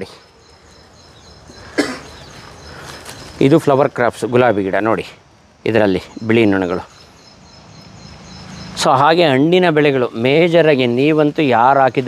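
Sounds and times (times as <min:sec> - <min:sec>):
man talking: 0:00.0 - 0:00.3, 0:03.4 - 0:07.0, 0:08.7 - 0:12.0.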